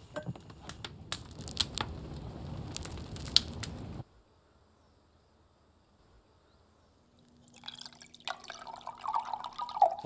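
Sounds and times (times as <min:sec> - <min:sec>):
crackling and clicking: 0:00.0 - 0:04.0.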